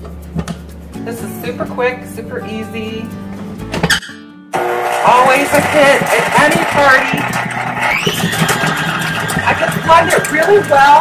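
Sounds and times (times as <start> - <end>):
stand mixer motor humming: 4.6 - 11.0.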